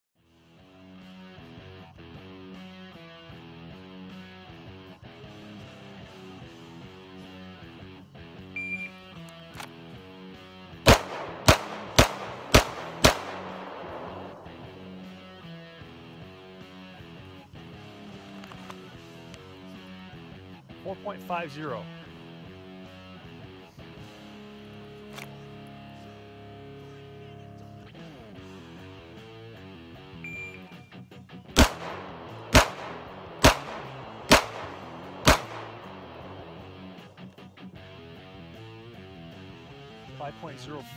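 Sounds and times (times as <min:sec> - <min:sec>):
guitar music: 0:00.7 - 0:40.9
shot timer beep: 0:08.6 - 0:09.0, 0:30.2 - 0:30.9
handgun shots: 0:09.5 - 0:09.8, 0:10.9 - 0:14.7, 0:31.6 - 0:36.3.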